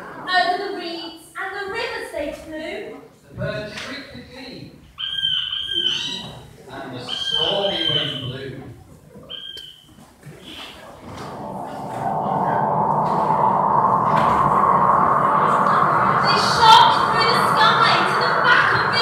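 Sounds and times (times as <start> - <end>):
crowd noise in a hall: 0.0 - 3.5, 4.5 - 19.0.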